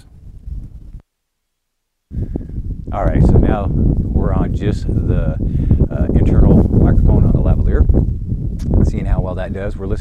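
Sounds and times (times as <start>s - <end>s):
wind rumbling on microphone: 0.0s - 1.0s, 2.1s - 10.0s
microphone handling noise: 0.0s - 1.1s, 2.1s - 10.0s.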